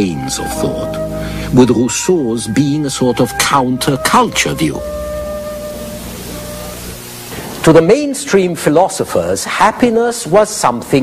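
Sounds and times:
soft music sustained chord: 0.0s - 9.3s
faint hiss: 0.0s - 11.0s.

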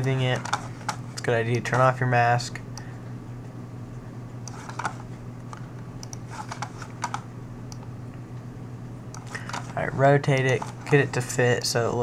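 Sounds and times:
steady low hum: 0.0s - 12.0s
computer keyboard keys clicking: 9.2s - 11.0s.

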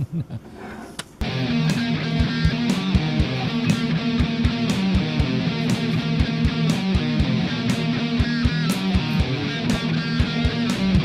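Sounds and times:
rock music on radio: 1.2s - 11.0s.

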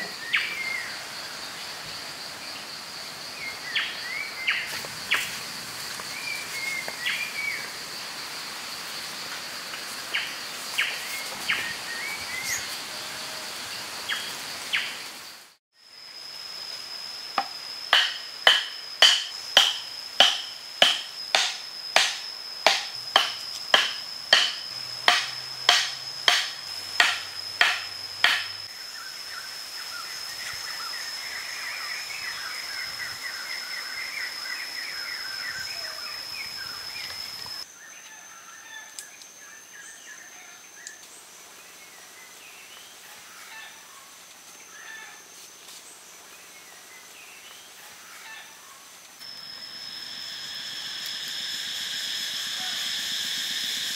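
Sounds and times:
high insect drone: 0.0s - 53.9s
wooden stake pounded into dirt: 18.0s - 28.5s.

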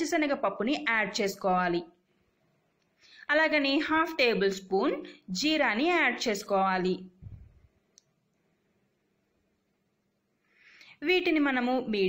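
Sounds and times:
soft low thump: 7.2s - 7.7s.

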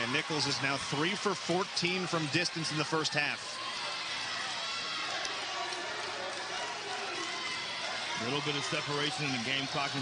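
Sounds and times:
arena crowd din: 0.0s - 10.0s.

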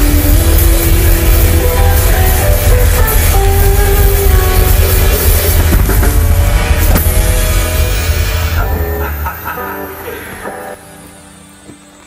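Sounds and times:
live rock band music: 0.0s - 11.6s
bass guitar: 0.0s - 12.0s
guitar notes ringing: 0.0s - 12.0s.

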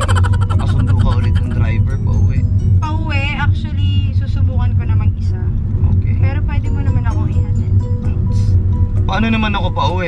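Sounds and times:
person talking: 0.0s - 1.8s
car interior rumble: 0.0s - 10.0s.

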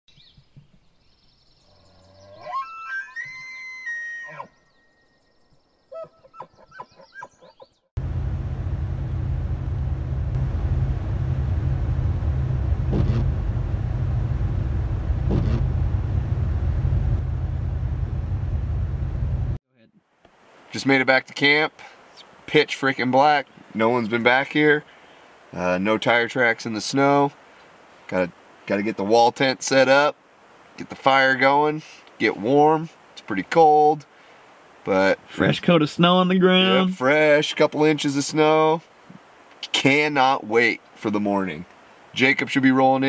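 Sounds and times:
vehicle cabin rumble: 8.0s - 19.6s.

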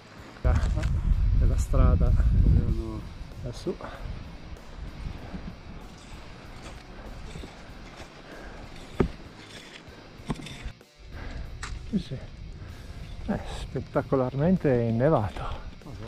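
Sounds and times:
faint music: 0.0s - 16.0s
skis rustling on hard snow: 4.9s - 10.8s.

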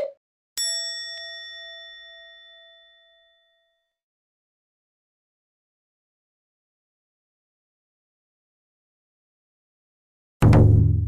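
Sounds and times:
struck bell ringing: 0.0s - 3.8s.

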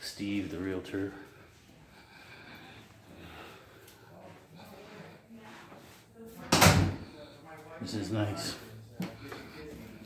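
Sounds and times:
door closing with thud: 6.5s - 7.0s.

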